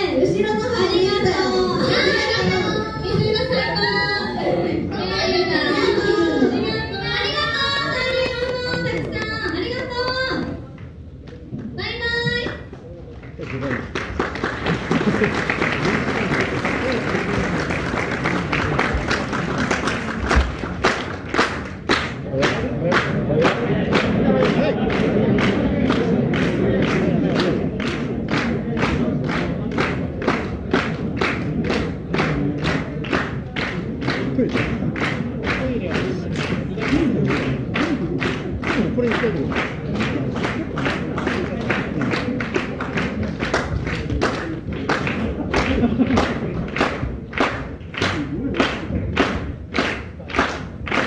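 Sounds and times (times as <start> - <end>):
rhythmic clapping: 5.1 - 51.0.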